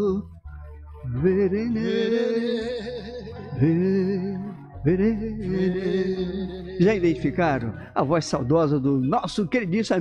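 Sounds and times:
man singing: 0.0 - 0.3, 1.0 - 10.0.

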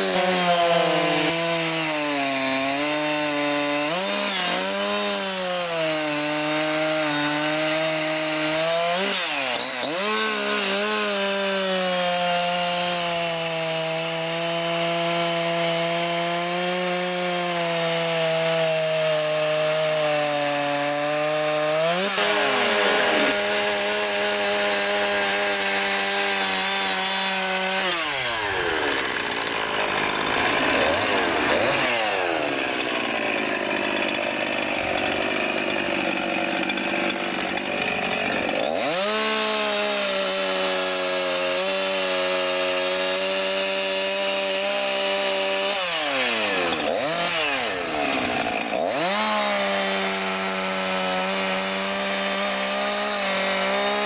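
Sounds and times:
chainsaw cutting wooden log: 0.0 - 54.0.

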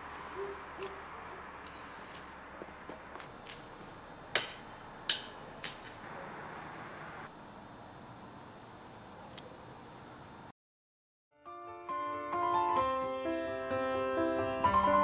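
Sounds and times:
owl hooting: 0.1 - 2.1
steady hiss: 3.3 - 10.5.

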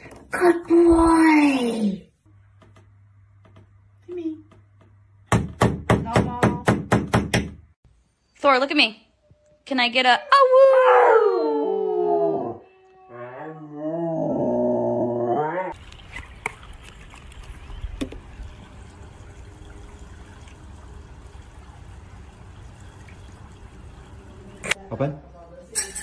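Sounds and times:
dog howling: 10.1 - 15.8.

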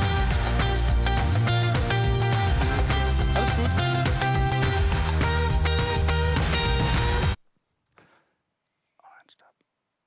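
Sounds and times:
faint whispery voice: 8.9 - 9.7.

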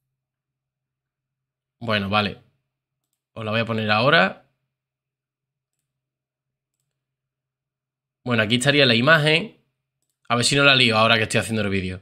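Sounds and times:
faint computer mouse click: 6.7 - 7.0.

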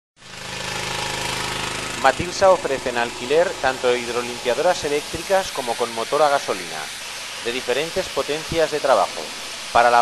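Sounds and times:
high-pressure water jet hissing: 0.2 - 10.0
pressure washer engine hum: 0.2 - 10.0.

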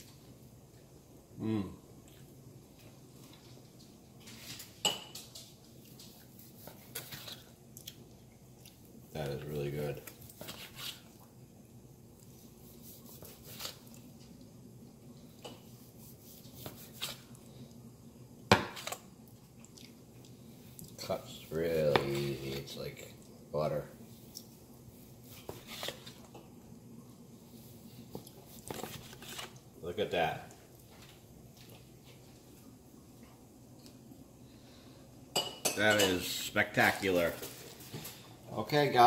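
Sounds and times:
knife slicing meat: 12.6 - 13.9, 15.8 - 17.3.

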